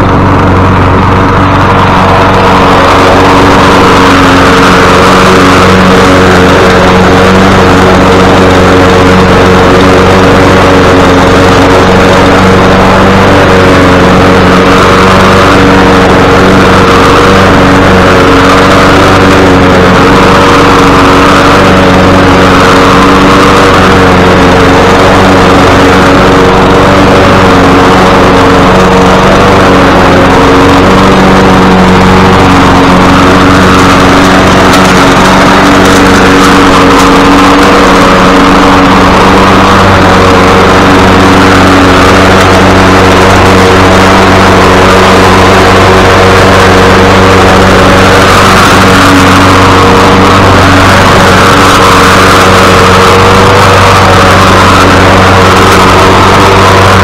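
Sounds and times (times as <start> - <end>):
lawn mower engine running: 0.0 - 57.0.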